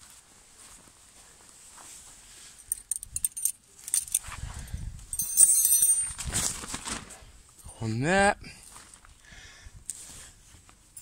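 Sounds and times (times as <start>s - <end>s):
metal tent pegs clinking: 2.6s - 4.3s, 5.1s - 7.0s.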